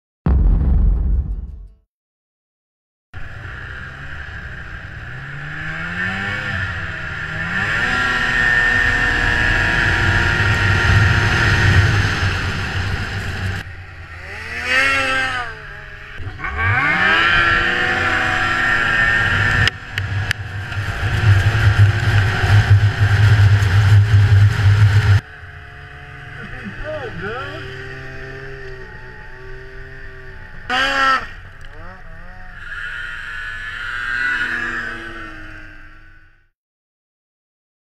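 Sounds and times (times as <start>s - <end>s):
snowmobile engine revving: 3.2s - 36.2s.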